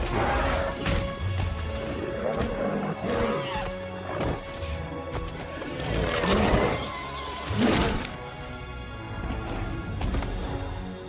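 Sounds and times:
dramatic orchestral film score: 0:00.0 - 0:11.0.

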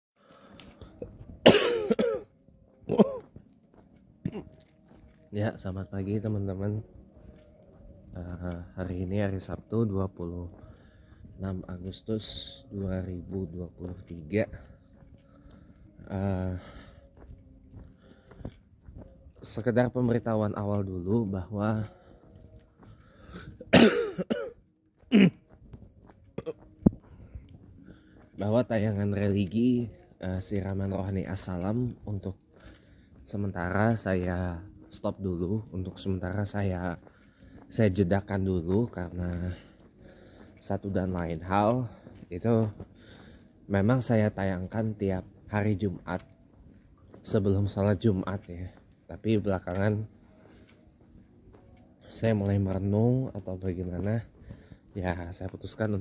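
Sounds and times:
man coughing: 0:01.4 - 0:03.4, 0:04.2 - 0:04.6, 0:23.6 - 0:25.5, 0:26.4 - 0:26.7.

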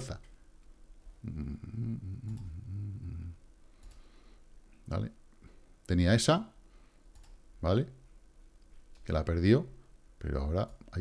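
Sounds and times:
man humming low: 0:01.2 - 0:03.4.

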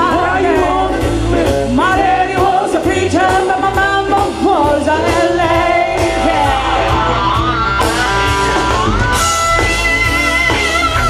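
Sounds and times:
woman singing blues: 0:00.0 - 0:07.4
drums: 0:00.0 - 0:11.0
electric guitar: 0:00.0 - 0:11.0.

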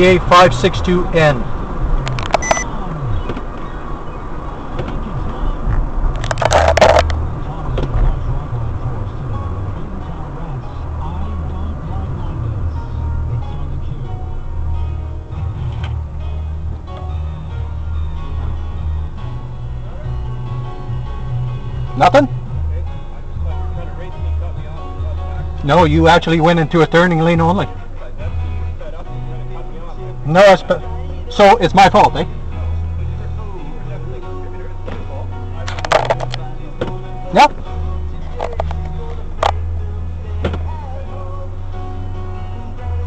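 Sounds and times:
background music: 0:00.0 - 0:43.0
car engine and road noise: 0:00.0 - 0:43.0.

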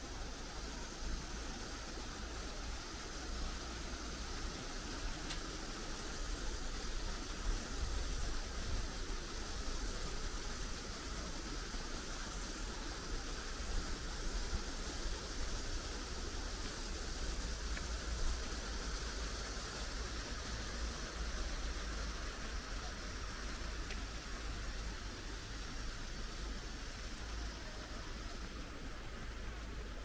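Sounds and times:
rushing hiss: 0:00.0 - 0:30.0.

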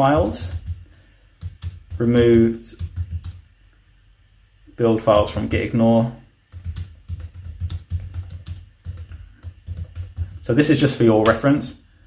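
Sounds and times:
typing on computer keyboard: 0:00.0 - 0:03.4, 0:06.5 - 0:10.5.

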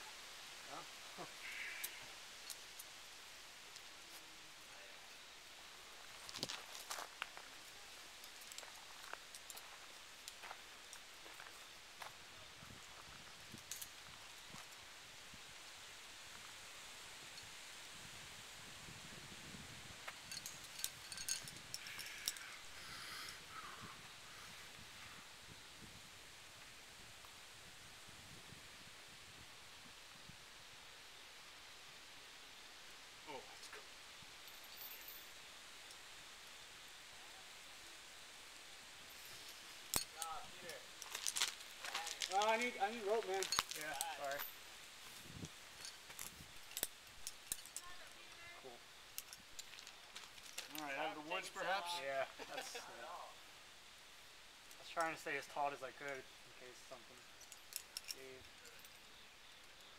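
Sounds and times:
faint clicks and rustles: 0:05.8 - 0:14.9, 0:39.0 - 0:51.1, 0:56.0 - 0:59.9.

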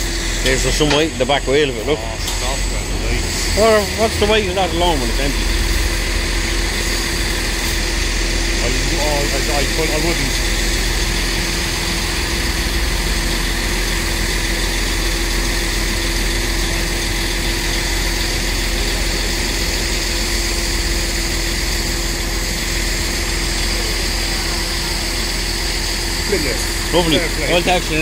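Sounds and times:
heavy diesel engine running: 0:00.0 - 0:28.0.

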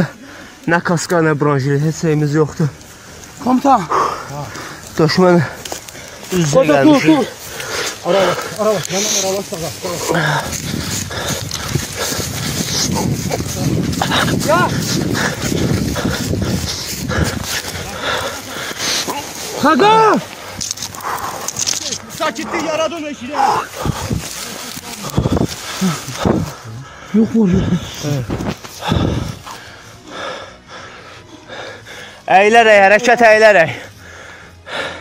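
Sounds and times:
man breathing hard: 0:00.0 - 0:00.7, 0:02.8 - 0:21.8, 0:23.4 - 0:32.3, 0:33.7 - 0:35.0
indistinct voices: 0:00.0 - 0:34.9.

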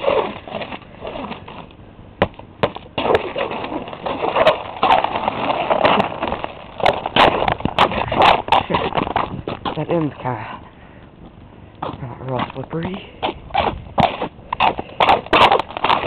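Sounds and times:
footsteps crunching on icy snow: 0:00.0 - 0:10.4, 0:11.8 - 0:16.0
snow crust crackling: 0:03.0 - 0:10.1.

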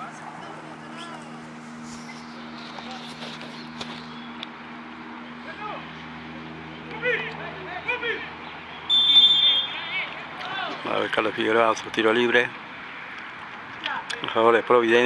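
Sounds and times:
distant players shouting: 0:05.3 - 0:11.9
referee's whistle blast: 0:08.9 - 0:09.8.

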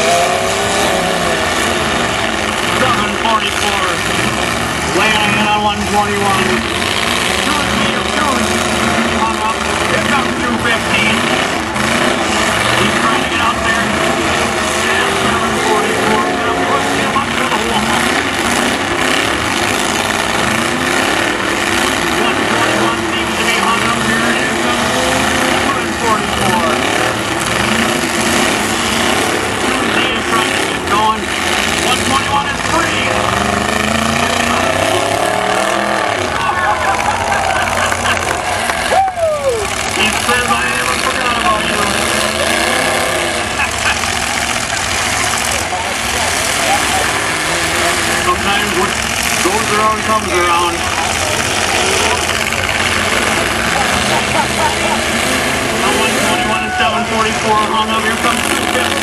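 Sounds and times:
crowd voices: 0:00.0 - 0:59.0
truck engines revving: 0:00.0 - 0:59.0.

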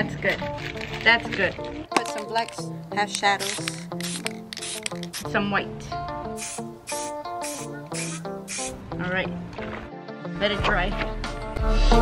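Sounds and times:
background music with held notes: 0:00.0 - 0:12.0
spray-paint can hissing: 0:03.4 - 0:05.3, 0:06.4 - 0:08.8.

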